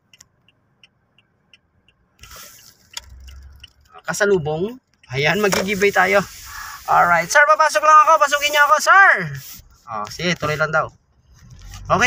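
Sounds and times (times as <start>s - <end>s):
faint regular ticking: 0.0s - 8.1s
car engine and tyre noise: 0.0s - 12.0s.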